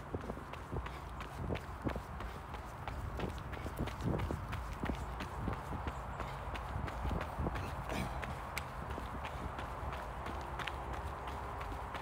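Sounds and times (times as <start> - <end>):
running footsteps on gravel: 0.0 - 12.0.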